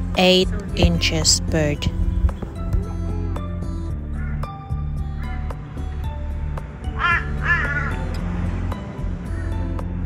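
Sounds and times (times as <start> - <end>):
background music: 0.0 - 10.0
crow cawing: 4.1 - 4.6, 6.9 - 8.1.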